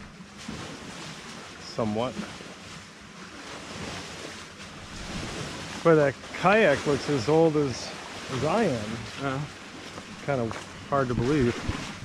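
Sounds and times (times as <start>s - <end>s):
lake waves washing on shore: 0.0s - 12.0s.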